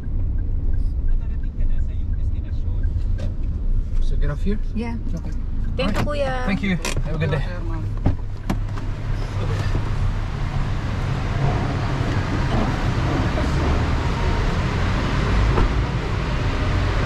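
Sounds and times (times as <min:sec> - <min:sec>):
idling cars rumbling: 0:00.0 - 0:17.0.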